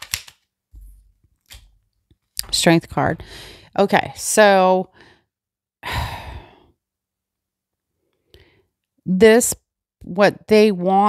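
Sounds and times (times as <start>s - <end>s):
woman sighing: 5.8s - 6.7s.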